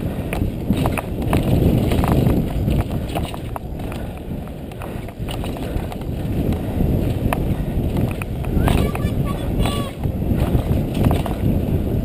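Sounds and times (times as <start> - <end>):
bike clacking and rattling: 0.0 - 11.6
wind rushing on microphone: 0.0 - 12.0.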